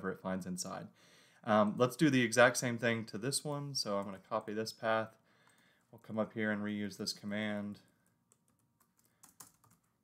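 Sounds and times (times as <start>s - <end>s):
faint keyboard keystrokes: 7.8s - 10.0s.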